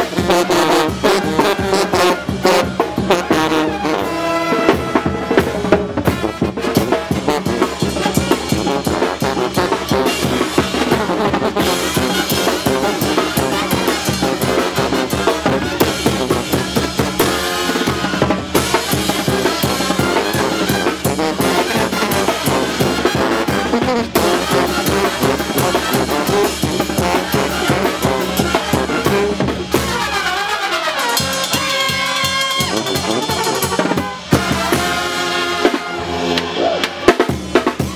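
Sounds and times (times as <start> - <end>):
brass band playing: 0.0 - 37.9
snare drum and cymbals: 0.0 - 37.9.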